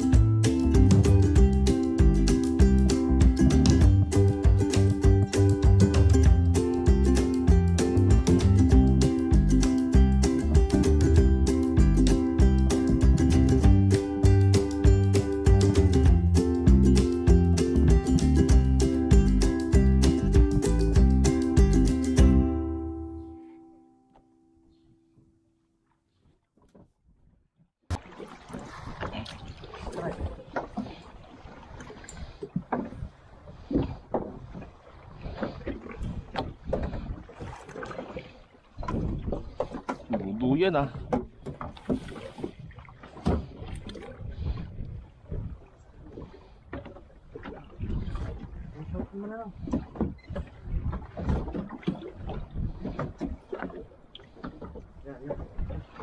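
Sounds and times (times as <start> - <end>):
waves slapping boat hull: 0.0 - 22.4, 27.9 - 56.0
knocks and splashes: 0.0 - 22.6, 27.9 - 56.0
wind: 0.0 - 56.0
wind buffeting microphone: 29.7 - 56.0.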